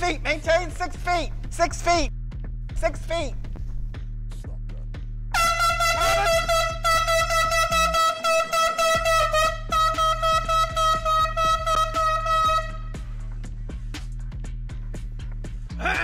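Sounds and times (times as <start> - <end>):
background music: 0.0 - 16.0
loud horn-like tone pulsing: 5.4 - 13.1.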